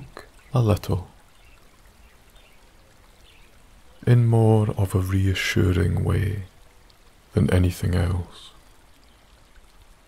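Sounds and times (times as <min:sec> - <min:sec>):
small stream babbling: 0:00.0 - 0:10.0.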